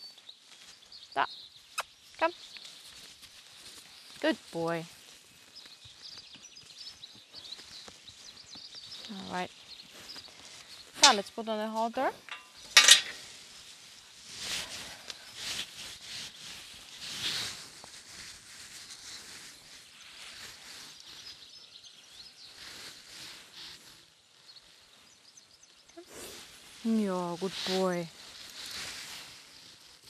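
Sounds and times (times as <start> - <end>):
strap rustling and clinking: 10.8 - 11.4, 12.1 - 13.4.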